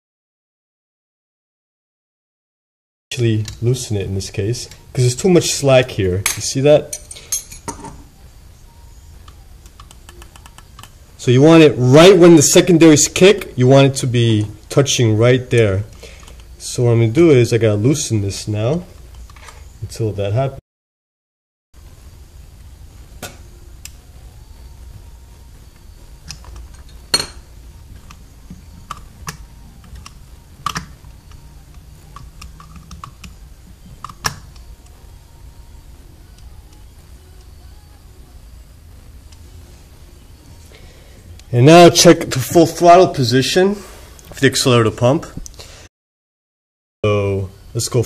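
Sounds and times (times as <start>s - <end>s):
low steady hum: 3.1s - 20.6s, 21.8s - 45.8s
metallic clicks and taps: 28.0s - 33.4s.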